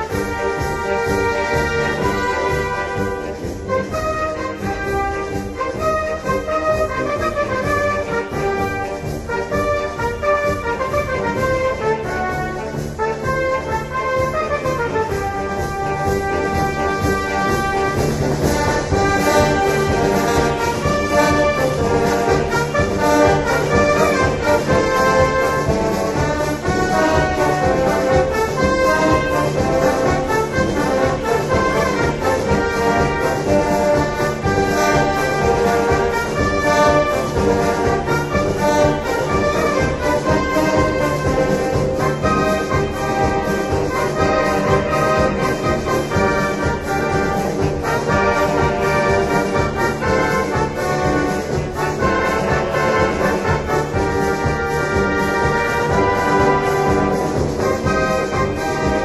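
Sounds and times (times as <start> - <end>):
brass melody: 0.0 - 59.0
steady drum beat: 0.0 - 59.0.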